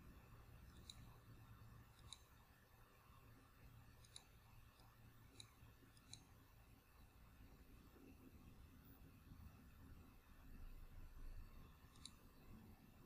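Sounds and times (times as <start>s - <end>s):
low steady hum: 0.0s - 13.0s
computer mouse clicks: 0.2s - 3.2s, 3.8s - 6.5s, 11.4s - 12.7s.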